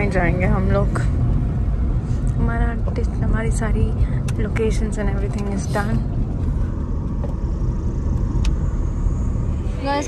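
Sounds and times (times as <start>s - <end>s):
road and engine rumble in car: 0.0s - 10.0s.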